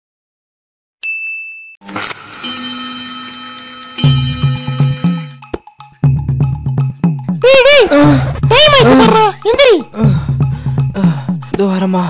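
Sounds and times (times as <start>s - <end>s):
high ding: 1.0s - 1.8s, 2.4s - 5.5s.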